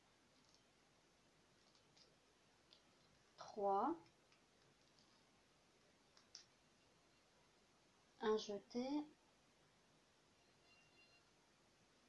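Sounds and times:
knitting needles tapping: 6.1 - 6.6.

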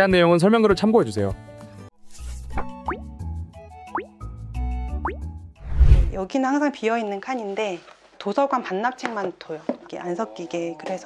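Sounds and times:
light background music: 0.0 - 9.1.

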